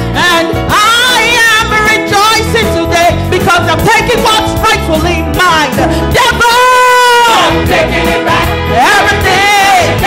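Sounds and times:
band accompaniment: 0:00.0 - 0:10.0
lead singer: 0:05.9 - 0:10.0
church choir singing: 0:07.1 - 0:10.0.

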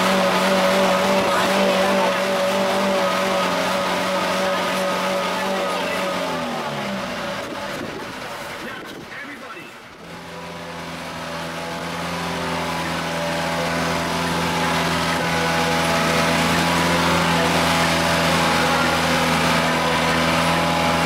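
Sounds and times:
boat engine drone: 0:00.0 - 0:21.0.

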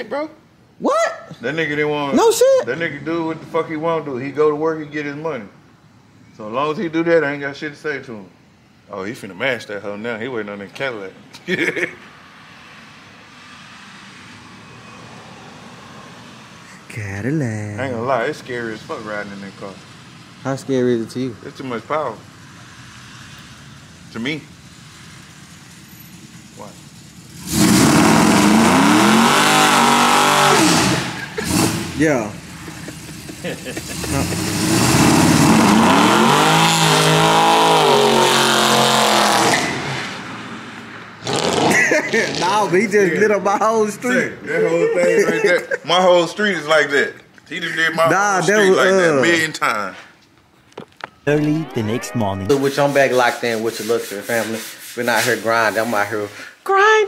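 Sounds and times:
distant car engine revving: 0:12.0 - 0:43.3.

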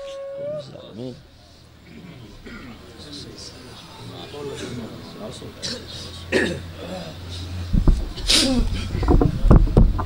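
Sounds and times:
faint voices: 0:00.0 - 0:10.0
man clearing throat: 0:01.9 - 0:02.8, 0:05.6 - 0:07.2.

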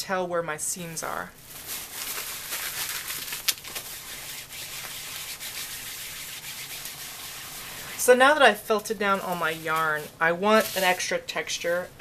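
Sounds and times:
plastic agitator scrubbing wet felt: 0:03.7 - 0:08.1.

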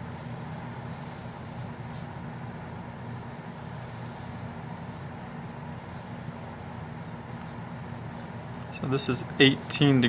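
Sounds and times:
marker drawing on paper: 0:00.0 - 0:02.1
low hum and hiss: 0:00.0 - 0:10.0.

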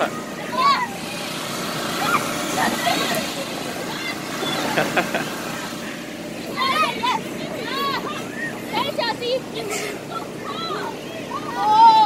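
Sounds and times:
children shouting: 0:00.0 - 0:05.1, 0:06.4 - 0:12.0
air blower humming: 0:00.0 - 0:12.0.

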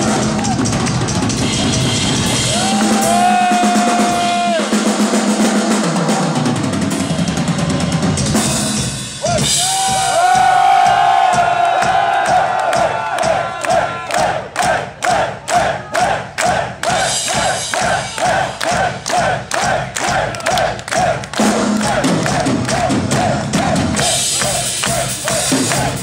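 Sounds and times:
crowd noise: 0:00.0 - 0:04.9, 0:09.2 - 0:26.0
person shouting rhythmically: 0:02.5 - 0:04.7.

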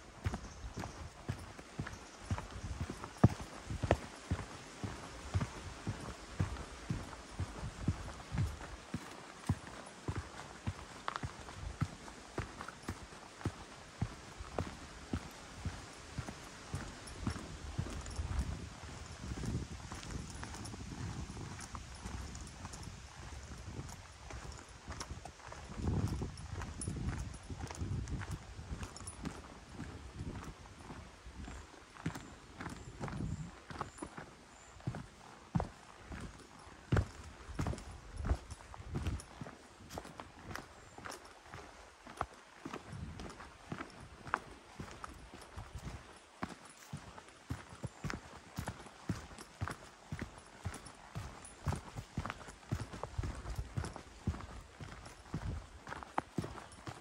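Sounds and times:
footsteps on dirt path: 0:00.0 - 0:57.0.

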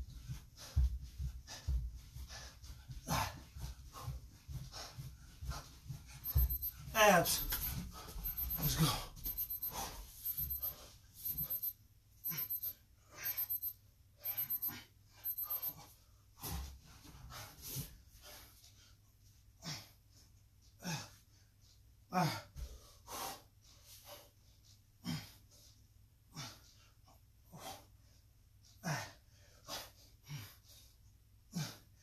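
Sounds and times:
man panting: 0:00.2 - 0:05.8, 0:22.1 - 0:24.4, 0:25.0 - 0:25.7, 0:28.7 - 0:32.0.

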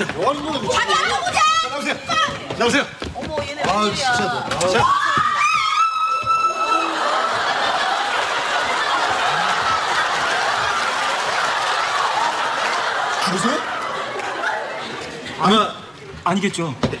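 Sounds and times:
studio audience laughing: 0:06.8 - 0:15.0.

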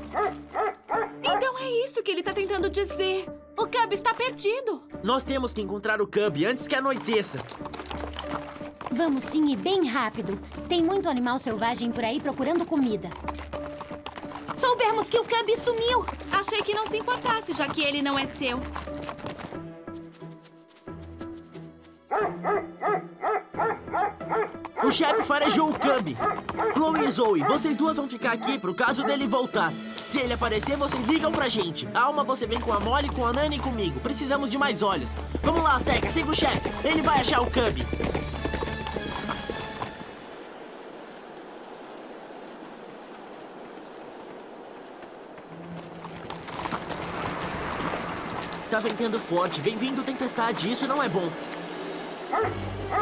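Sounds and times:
horse hooves clip-clopping: 0:00.0 - 0:01.6, 0:06.5 - 0:31.8, 0:32.4 - 0:53.0
background music: 0:00.0 - 0:40.2, 0:46.1 - 0:53.0
dog barking: 0:00.1 - 0:01.6, 0:22.1 - 0:27.7, 0:28.4 - 0:29.3, 0:52.3 - 0:53.0
wind hissing in trees: 0:40.0 - 0:45.7, 0:51.3 - 0:52.6.

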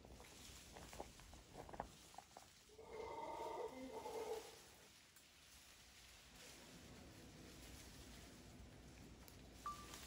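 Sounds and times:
faint animal call: 0:02.7 - 0:04.8.

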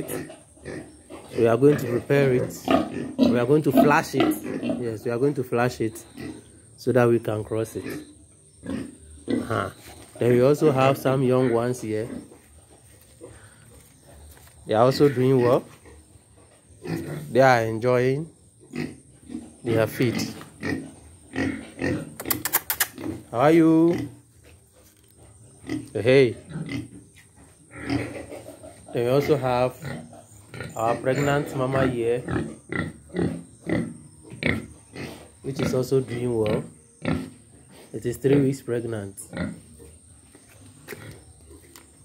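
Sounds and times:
pig grunt: 0:00.0 - 0:05.4, 0:16.8 - 0:17.5, 0:18.7 - 0:24.2, 0:25.6 - 0:27.0, 0:27.7 - 0:38.5, 0:39.1 - 0:39.9.

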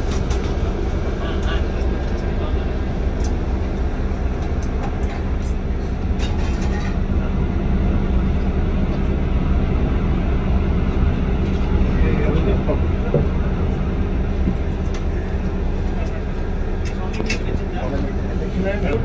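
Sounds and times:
bus engine droning: 0:00.0 - 0:19.0.

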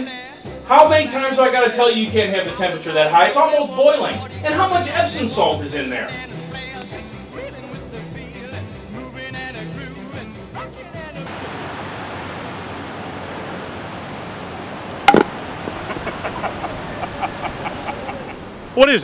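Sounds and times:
background music: 0:00.0 - 0:11.3
open-air ambience: 0:03.2 - 0:19.0
baseball bat hitting ball: 0:15.0 - 0:15.4.

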